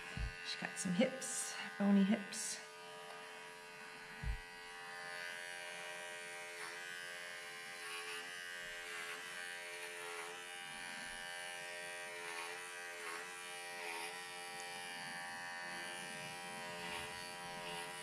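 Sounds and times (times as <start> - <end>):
animal clippers buzzing: 0.0 - 18.0.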